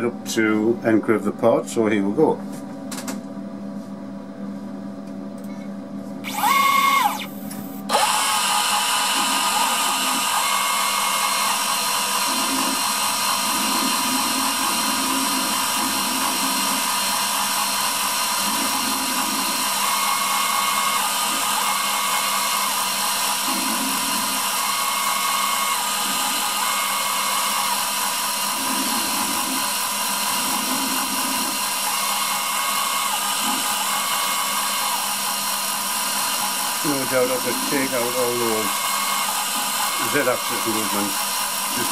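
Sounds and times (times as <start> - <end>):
machine axes whirring: 6.2 - 41.9
router spindle high-pitched whine: 6.2 - 41.9.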